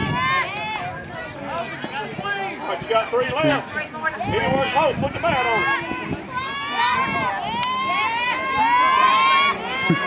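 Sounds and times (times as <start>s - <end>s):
children shouting: 4.2s - 10.0s.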